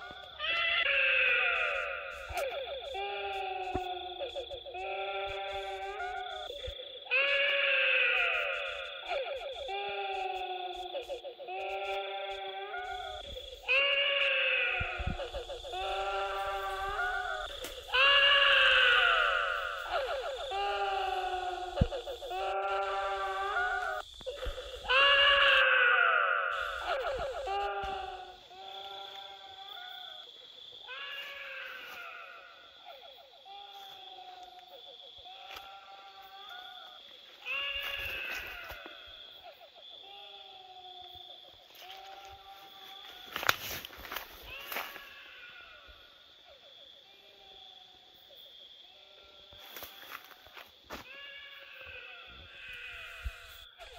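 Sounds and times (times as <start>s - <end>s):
wavering wailing cries: 0.0s - 47.7s, 48.8s - 53.9s.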